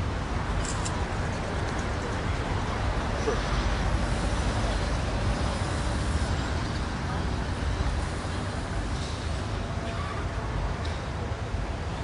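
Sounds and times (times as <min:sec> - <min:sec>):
traffic noise: 0:00.0 - 0:12.0.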